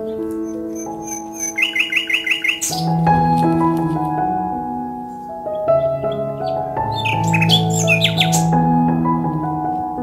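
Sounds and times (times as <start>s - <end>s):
bird chirping: 0.0s - 3.3s, 5.5s - 8.7s
soft piano-like music: 0.0s - 10.0s.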